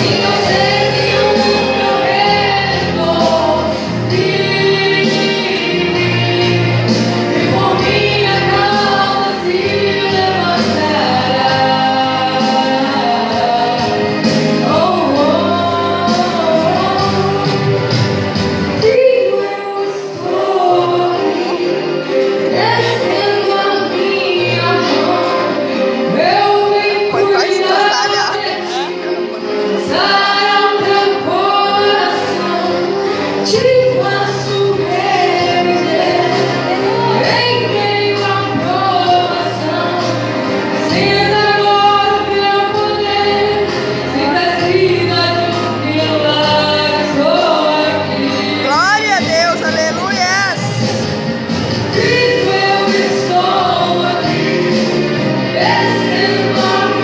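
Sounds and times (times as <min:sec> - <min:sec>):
woman singing gospel song: 0:00.0 - 0:17.9, 0:18.6 - 0:29.2, 0:29.8 - 0:51.2, 0:51.8 - 0:57.0
musical accompaniment: 0:00.0 - 0:57.0.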